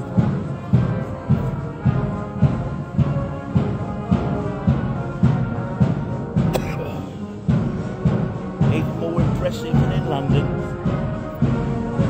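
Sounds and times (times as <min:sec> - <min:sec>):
bass drum beats: 0:00.0 - 0:12.0
held brass chords: 0:00.0 - 0:12.0
military marching band playing: 0:00.0 - 0:12.0.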